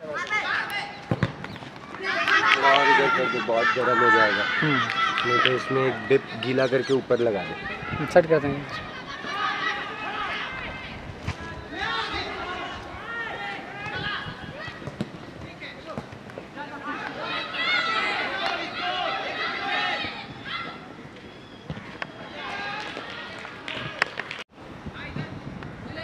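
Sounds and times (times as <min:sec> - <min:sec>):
ball being kicked: 0:01.1 - 0:01.6
boys shouting: 0:02.0 - 0:06.5, 0:07.4 - 0:11.0, 0:11.6 - 0:14.8, 0:16.7 - 0:20.8.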